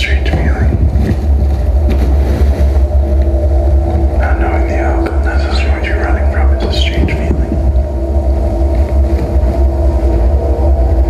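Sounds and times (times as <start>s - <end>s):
deep bass rumble: 0.0s - 11.0s.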